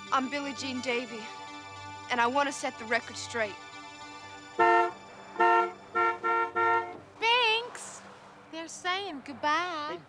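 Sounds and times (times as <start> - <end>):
car horn honking: 4.6 - 7.0.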